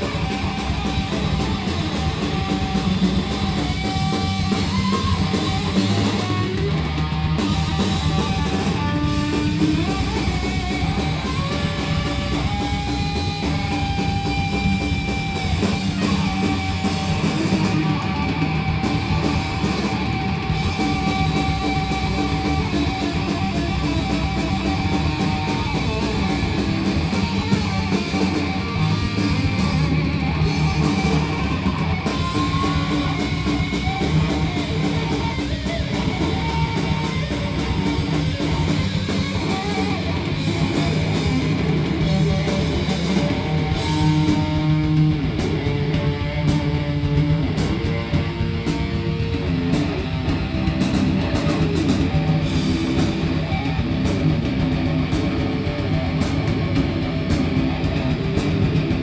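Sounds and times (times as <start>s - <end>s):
distorted electric guitar: 0.0s - 59.0s
heavy bass and drums: 0.0s - 59.0s.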